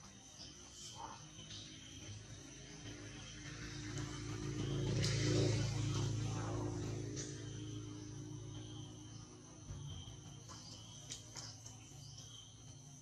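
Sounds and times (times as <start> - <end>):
high insect drone: 0.0 - 13.0
vehicle engine passing: 2.0 - 11.0.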